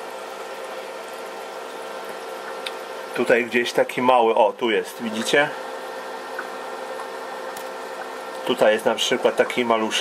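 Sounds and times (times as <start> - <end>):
aquarium bubbling hiss: 0.0 - 10.0.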